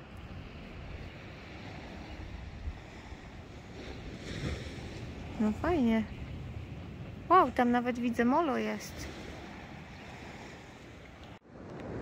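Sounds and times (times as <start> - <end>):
small waves washing on beach: 0.0 - 12.0
wind rumbling on microphone: 0.0 - 12.0.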